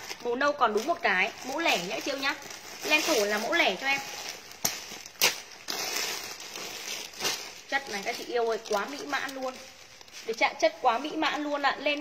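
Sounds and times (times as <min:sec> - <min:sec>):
scissors cutting plastic: 0:00.0 - 0:10.5
plastic bags rustling and crinkling: 0:00.0 - 0:12.0.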